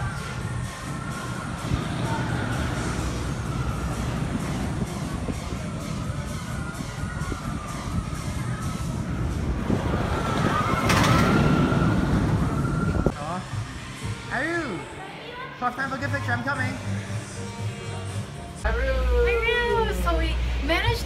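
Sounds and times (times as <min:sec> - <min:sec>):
roller coaster rumbling on track: 0:00.6 - 0:13.1.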